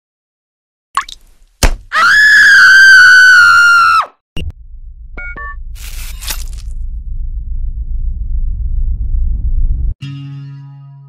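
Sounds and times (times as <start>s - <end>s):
high-pitched scream: 1.9s - 4.2s
low hum: 4.4s - 10.0s.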